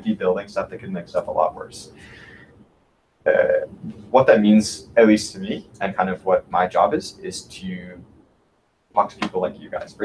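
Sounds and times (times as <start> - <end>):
man talking: 0.0 - 2.4, 3.3 - 8.0, 9.0 - 10.0
man saying uh hesitantly: 3.3 - 8.0.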